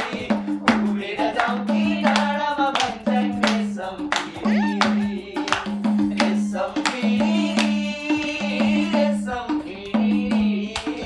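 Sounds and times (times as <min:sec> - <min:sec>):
people clapping along: 0:00.0 - 0:08.4, 0:10.7 - 0:11.0
hand drum rhythm: 0:00.0 - 0:11.0
person singing: 0:00.0 - 0:11.0.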